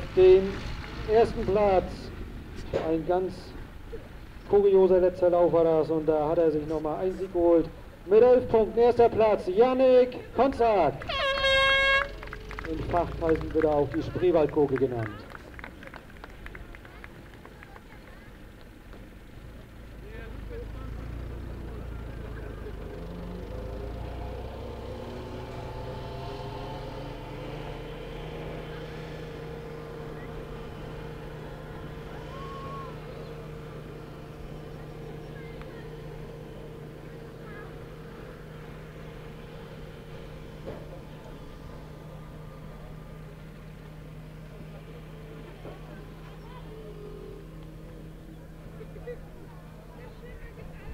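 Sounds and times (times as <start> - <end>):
truck engine drone: 0.0 - 50.9.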